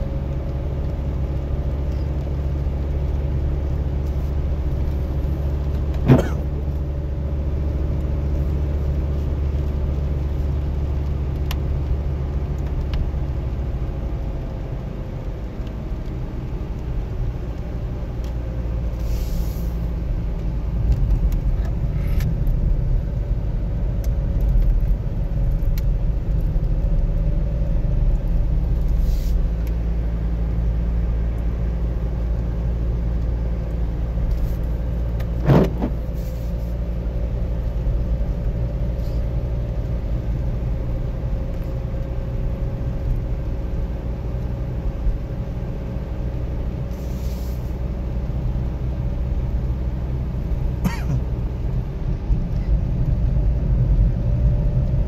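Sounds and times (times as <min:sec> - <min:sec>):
engine and tyre drone: 0:00.0 - 0:55.0.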